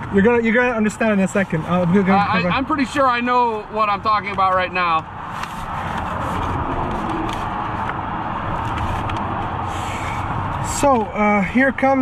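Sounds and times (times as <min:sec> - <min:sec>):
road traffic rushing past: 0:00.0 - 0:12.0
faint paper rustles: 0:05.3 - 0:07.9.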